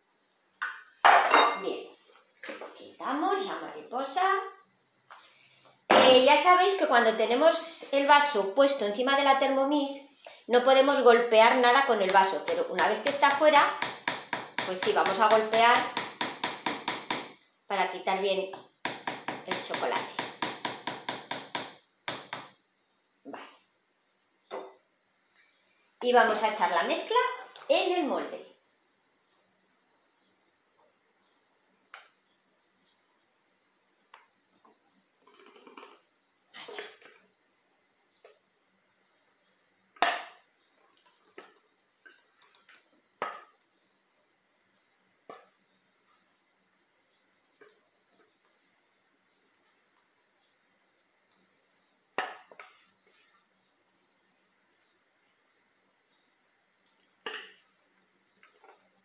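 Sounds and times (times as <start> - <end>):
metal bowl clinking and knocking: 0.6 - 1.6.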